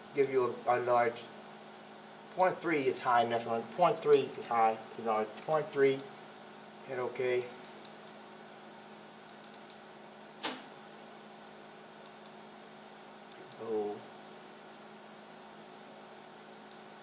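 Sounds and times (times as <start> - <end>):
faint steady hum: 0.0 - 17.0
computer mouse clicks: 9.3 - 9.8, 12.0 - 12.4.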